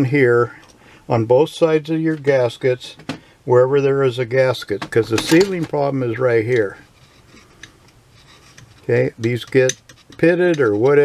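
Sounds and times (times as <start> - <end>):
man speaking: 0.0 - 6.9, 8.8 - 11.0
light clicks of metal parts: 4.7 - 11.0.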